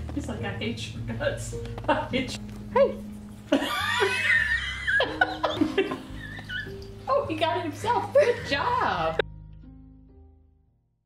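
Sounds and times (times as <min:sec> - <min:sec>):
people laughing: 0:03.5 - 0:06.7.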